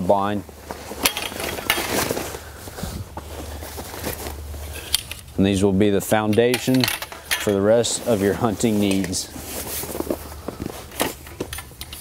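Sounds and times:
fabric cover rustling: 0.2 - 4.9, 7.5 - 11.5
metal bars clinking and knocking: 1.0 - 1.9, 6.2 - 7.7.

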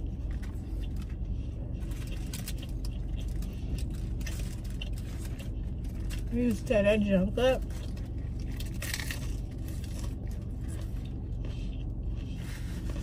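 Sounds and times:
crunching bites and chewing: 0.0 - 6.3, 7.6 - 13.0
low hum inside a car: 0.0 - 13.0.

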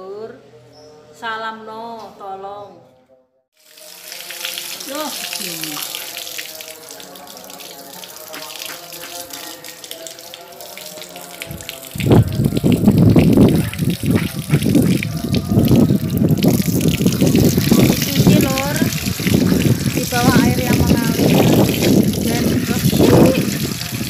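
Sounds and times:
water running from a hose: 3.6 - 24.0.

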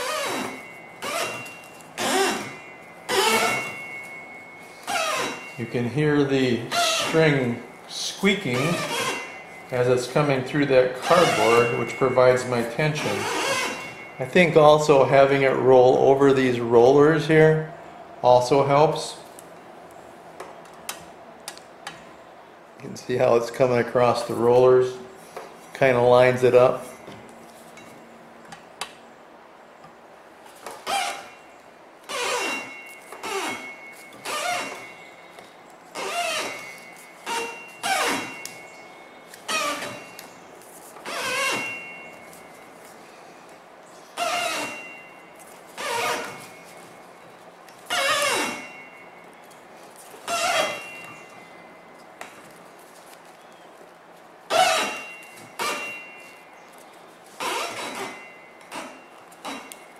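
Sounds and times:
string squeaking through cardboard: 0.0 - 3.6, 6.7 - 7.2, 13.2 - 13.9, 44.2 - 44.8, 45.7 - 46.5, 47.9 - 48.6, 50.2 - 50.9, 54.5 - 55.0, 57.2 - 58.2.

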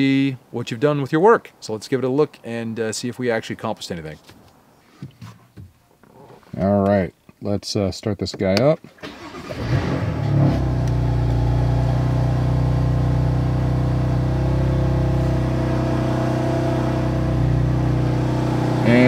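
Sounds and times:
car engine starting and idling: 9.0 - 19.0.

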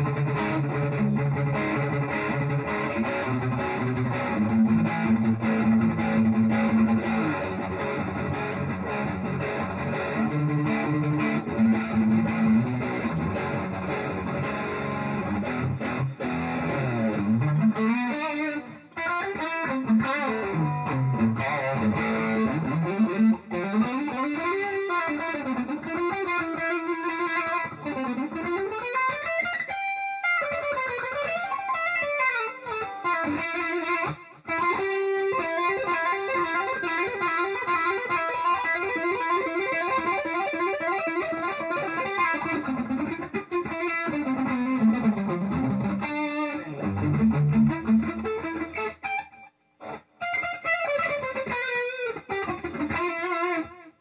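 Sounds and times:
overdriven electric guitar: 0.0 - 54.0.

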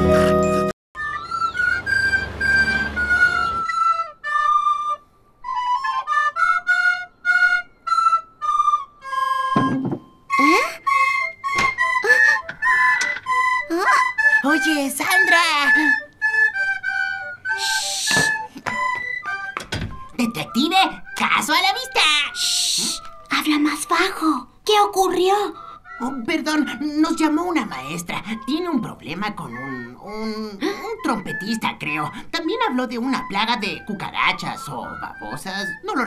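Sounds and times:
recorder playing a tune: 0.0 - 24.3.

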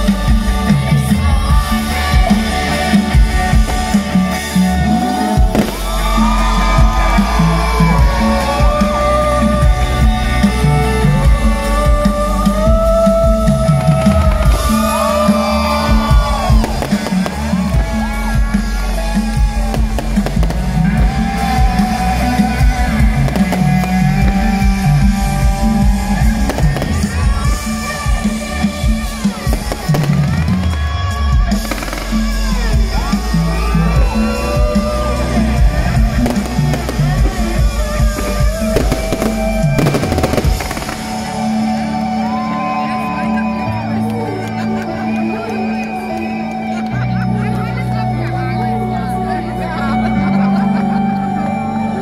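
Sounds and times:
loud live pop music: 0.0 - 52.0
fireworks crackling and banging: 1.8 - 9.4, 13.8 - 33.3, 36.0 - 42.3.

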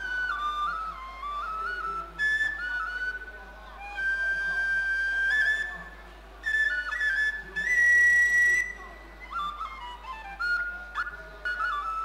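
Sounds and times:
flute melody: 0.0 - 12.0.

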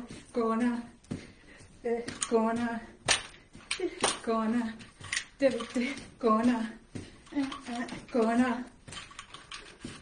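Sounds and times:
faint clicks and rustling: 1.0 - 10.0.

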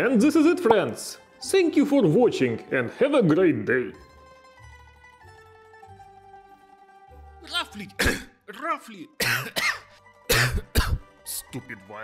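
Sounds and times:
person coughing hard: 8.0 - 8.4, 9.2 - 11.1.

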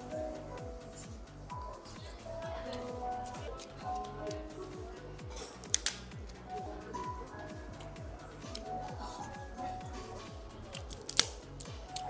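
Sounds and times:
background music with steady beat: 0.0 - 12.0
lobster shell cracking: 5.4 - 6.0, 10.7 - 11.7.

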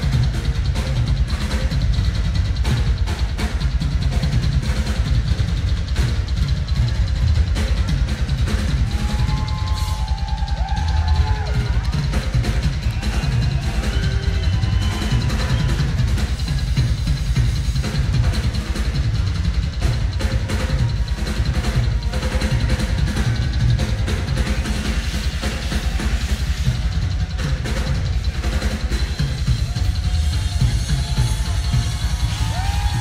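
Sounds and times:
drum and cymbal hits: 0.0 - 33.0
rapid bass drum beats: 0.0 - 33.0.

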